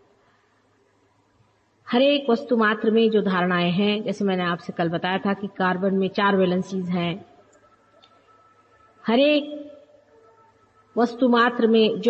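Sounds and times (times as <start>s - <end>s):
woman's voice: 1.9s - 7.3s, 9.1s - 9.7s, 11.0s - 12.0s.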